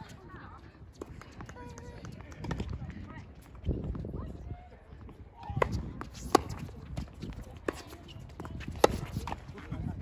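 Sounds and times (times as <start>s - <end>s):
tennis racket hitting ball: 5.6s - 6.7s, 7.6s - 9.4s.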